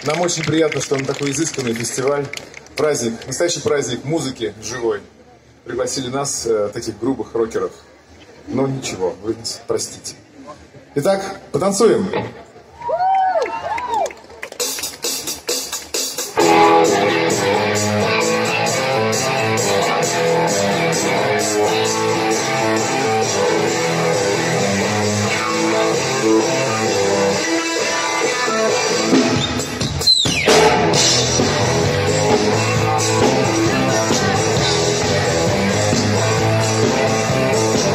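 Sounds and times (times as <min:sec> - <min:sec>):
live rock band playing: 0:14.6 - 0:37.9.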